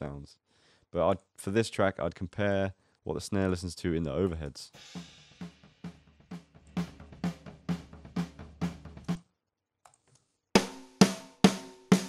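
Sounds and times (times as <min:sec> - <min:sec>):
rock drum beat: 0:04.8 - 0:09.2, 0:10.6 - 0:12.0
ringing snare drum: 0:10.6 - 0:12.0.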